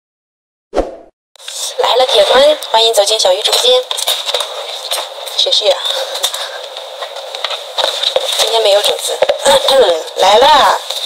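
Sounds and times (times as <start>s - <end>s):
woman speaking: 1.5s - 4.0s, 5.3s - 6.1s, 8.3s - 11.0s.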